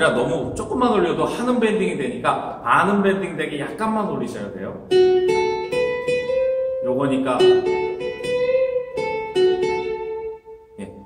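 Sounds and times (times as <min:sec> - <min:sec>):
acoustic guitar notes picked: 0:00.0 - 0:11.0.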